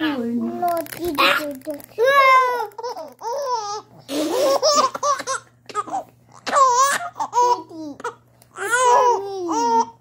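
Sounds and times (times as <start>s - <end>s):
baby laughing: 2.4s - 10.0s.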